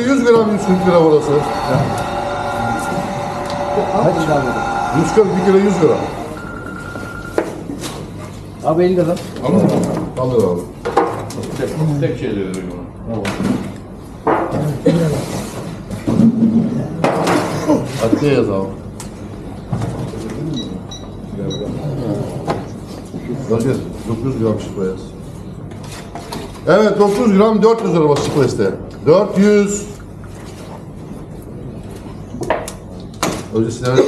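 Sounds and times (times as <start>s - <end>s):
low steady hum: 0.0s - 9.4s.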